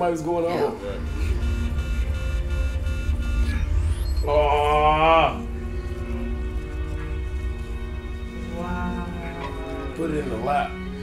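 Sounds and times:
held high tones of ambient score: 0:00.0 - 0:11.0
deep low rumble: 0:00.7 - 0:11.0.

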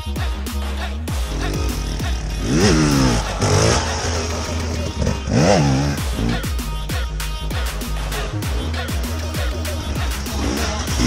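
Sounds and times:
dirt bike engine revving: 0:01.0 - 0:07.0, 0:07.7 - 0:11.0.

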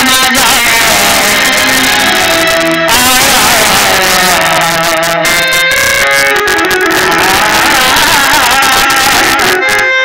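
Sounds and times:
live folk music: 0:00.0 - 0:10.0.

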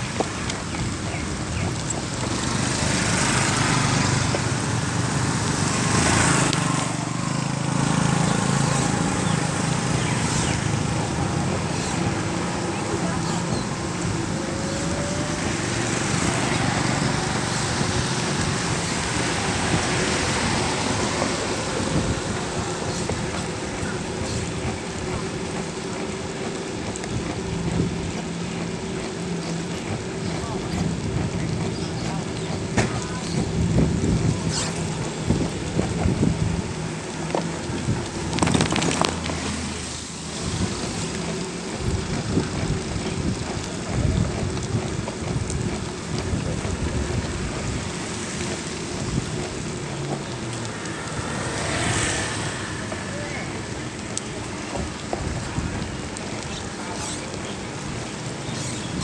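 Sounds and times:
motor traffic: 0:00.0 - 0:59.0
tyres hissing on wet road: 0:00.0 - 0:59.0
wind buffeting microphone: 0:00.0 - 0:59.0
vehicle passing: 0:02.2 - 0:26.6, 0:47.2 - 0:56.1.

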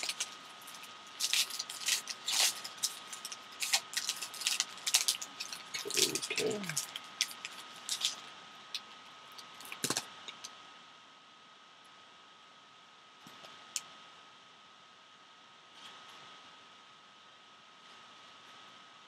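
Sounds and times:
foil wrapper crinkling: 0:00.0 - 0:10.5
thin constant tone: 0:00.0 - 0:19.0
card edges clicking: 0:09.7 - 0:10.4.

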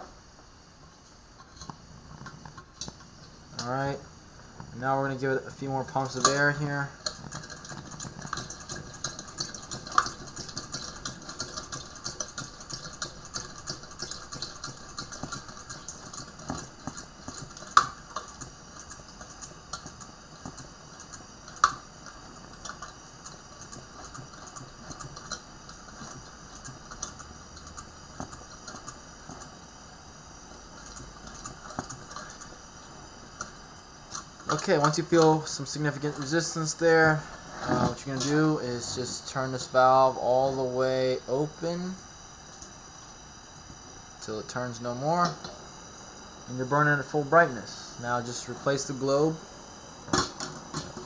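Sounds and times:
steady hiss: 0:29.0 - 0:51.0.

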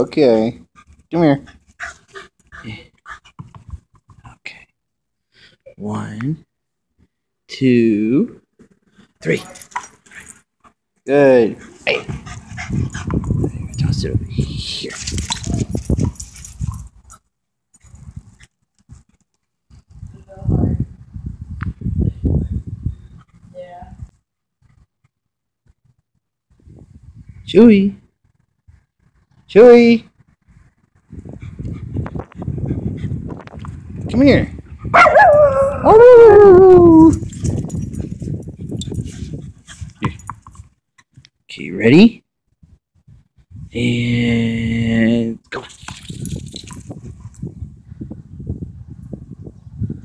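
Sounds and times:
dog panting: 0:00.7 - 0:03.6, 0:11.5 - 0:13.5, 0:31.3 - 0:33.3.

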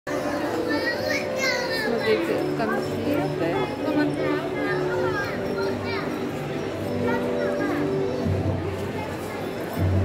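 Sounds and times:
children's high voices: 0:00.1 - 0:09.9
people chattering: 0:00.1 - 0:10.0.

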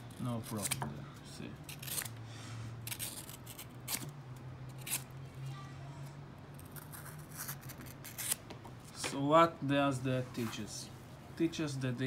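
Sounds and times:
knife cutting leather: 0:04.7 - 0:05.1, 0:06.6 - 0:08.4.

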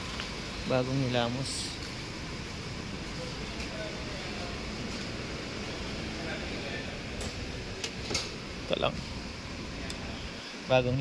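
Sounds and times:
low machinery hum: 0:00.0 - 0:11.0
faint distant voices: 0:02.8 - 0:11.0.

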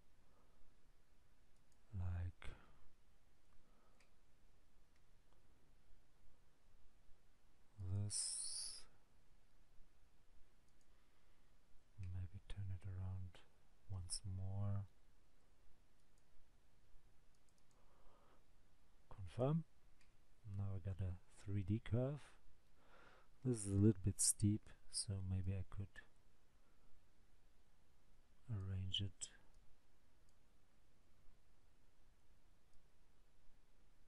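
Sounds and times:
computer mouse click: 0:17.3 - 0:17.8.

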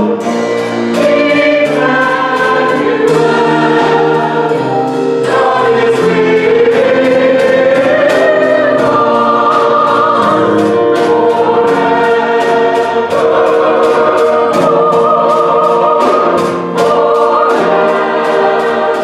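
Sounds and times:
instrumental accompaniment: 0:00.0 - 0:19.0
mixed choir singing: 0:00.0 - 0:19.0.

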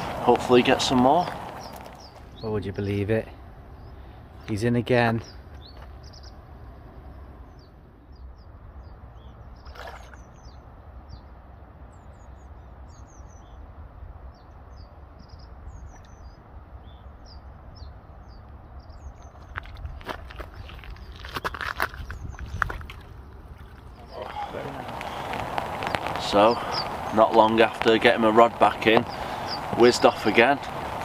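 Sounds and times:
small birds chirping: 0:00.0 - 0:31.0.

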